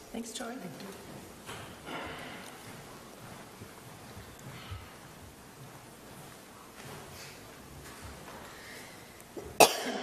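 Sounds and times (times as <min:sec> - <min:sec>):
sharp loud cough: 0:09.6 - 0:10.0.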